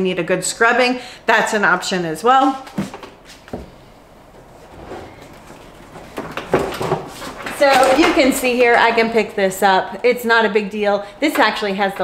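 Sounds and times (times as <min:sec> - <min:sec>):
plastic knocking and scraping: 0:04.7 - 0:08.4.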